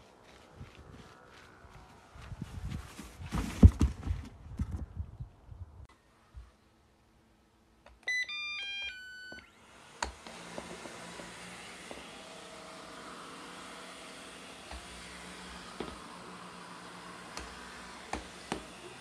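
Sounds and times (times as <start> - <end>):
robot vacuum motor whirring: 9.4 - 19.0.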